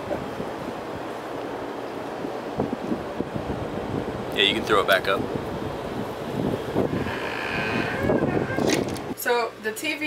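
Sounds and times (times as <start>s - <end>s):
wind buffeting microphone: 0.0s - 9.2s.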